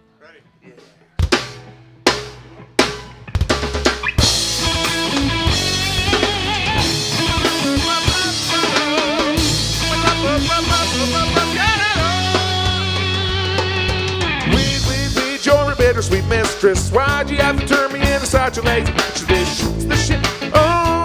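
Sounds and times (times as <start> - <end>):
live rock band playing: 0.8 - 21.0
loud drum hits: 14.4 - 15.3.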